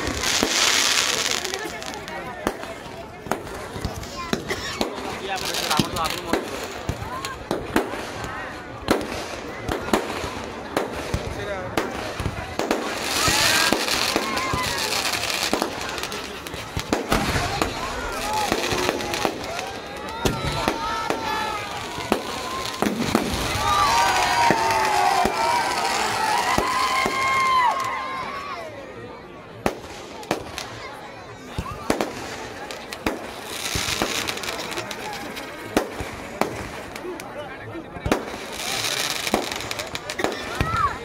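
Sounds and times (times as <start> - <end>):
crowd voices: 0.0 - 41.0
fireworks bangs and crackles: 0.0 - 41.0.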